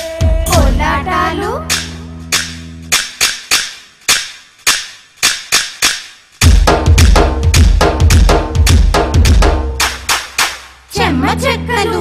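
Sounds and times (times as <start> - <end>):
sharp percussion strikes: 1.7 - 10.9.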